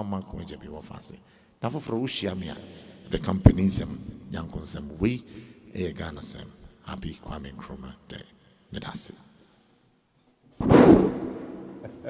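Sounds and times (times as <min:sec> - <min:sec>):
loud impact boom: 0:10.6 - 0:12.0.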